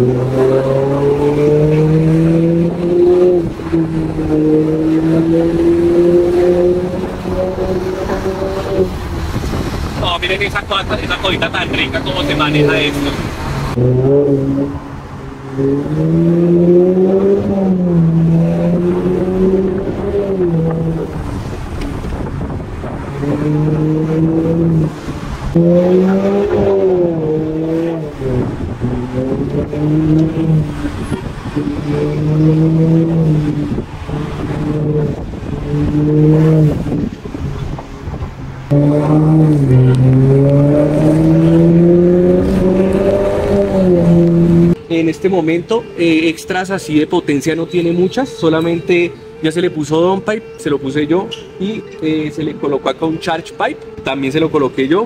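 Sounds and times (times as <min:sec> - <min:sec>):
car engine accelerating hard: 0:00.0 - 0:55.0.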